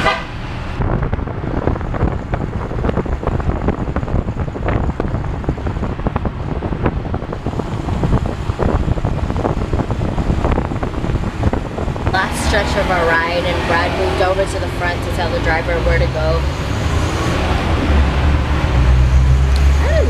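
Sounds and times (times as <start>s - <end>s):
road noise: 0.0s - 20.0s
wind buffeting microphone: 0.2s - 20.0s.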